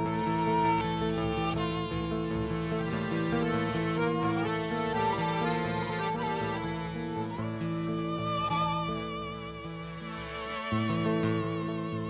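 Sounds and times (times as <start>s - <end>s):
accordion: 0.0s - 12.0s
nylon-string guitar: 0.0s - 12.0s
violin: 0.0s - 12.0s.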